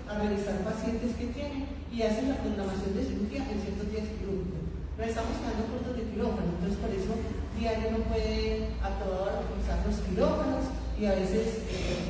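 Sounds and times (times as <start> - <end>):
woman talking into a microphone: 0.0 - 12.0.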